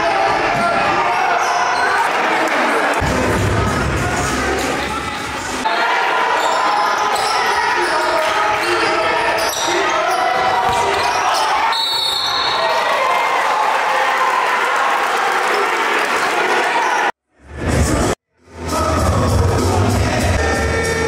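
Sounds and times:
crowd and player voices: 0.0s - 20.9s.

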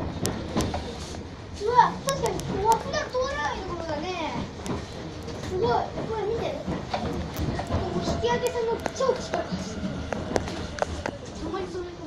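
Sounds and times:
children chattering and calling out: 1.4s - 12.0s
sharp clicks: 2.1s - 3.2s.

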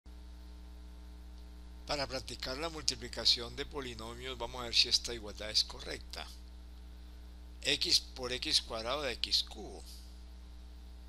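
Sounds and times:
electrical mains hum: 0.1s - 11.0s
man speaking: 1.9s - 6.4s, 7.6s - 10.0s.

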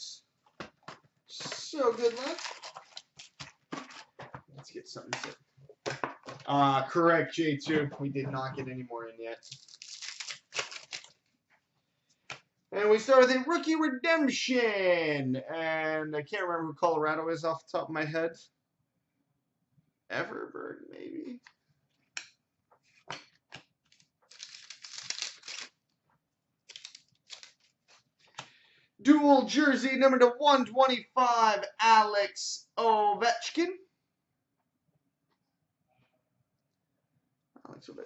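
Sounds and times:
papery rustle: 1.4s - 4.2s, 9.4s - 11.2s, 23.9s - 25.8s, 26.7s - 28.1s
wrapper tearing and crinkling: 1.6s - 4.1s, 9.4s - 11.3s, 23.9s - 25.8s, 26.7s - 28.0s.

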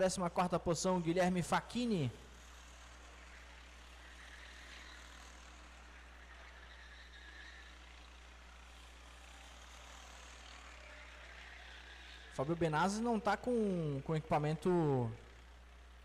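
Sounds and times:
faint kart engines racing: 0.0s - 16.0s.

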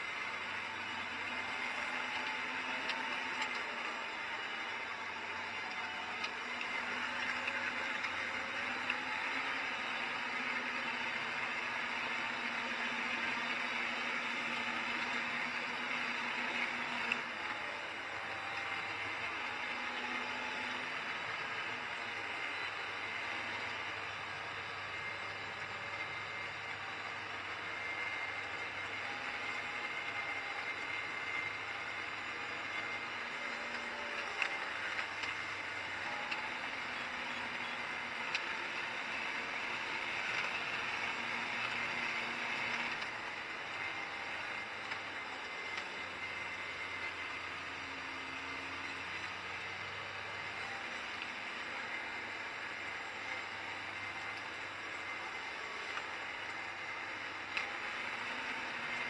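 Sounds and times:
engine drone in vehicle cab: 0.0s - 59.0s.

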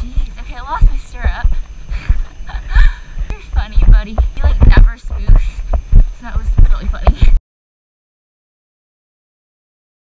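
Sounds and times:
rumbling ride noise: 0.0s - 7.4s.

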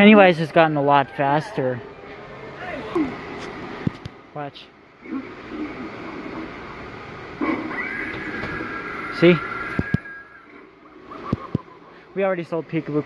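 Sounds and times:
animatronic sound track through speaker: 0.0s - 13.0s.

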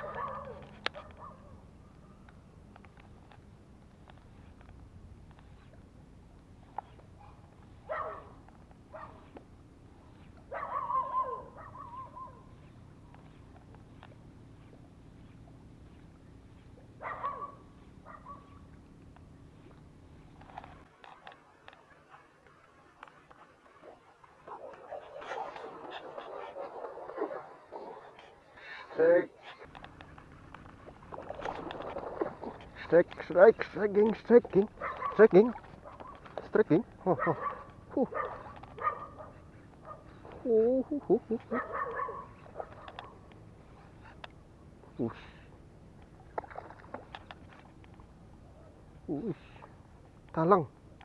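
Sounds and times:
low background rumble: 0.0s - 20.9s
animal calling: 10.0s - 13.5s.

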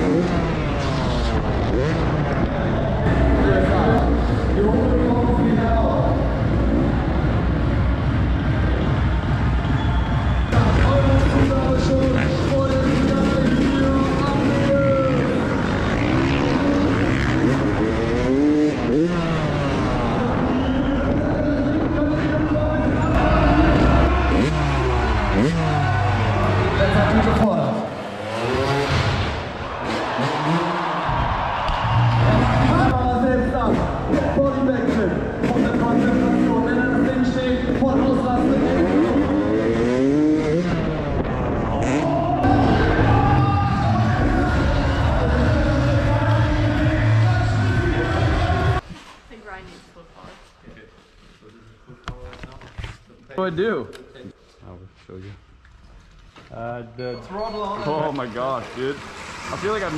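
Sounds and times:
dirt bike engines revving: 0.0s - 48.8s, 56.6s - 59.9s.

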